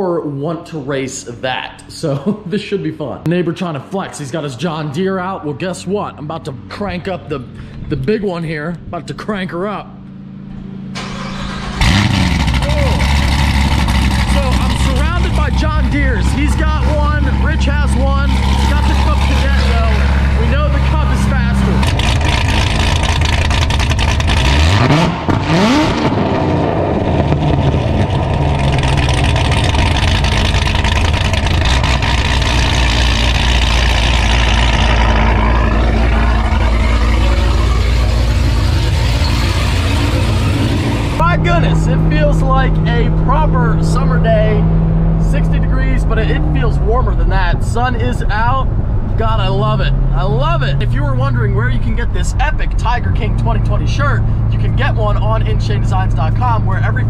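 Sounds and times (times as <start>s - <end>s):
engine revving: 9.9s - 57.0s
car engine cranking and starting: 10.0s - 57.0s
car engine idling loud: 10.0s - 57.0s.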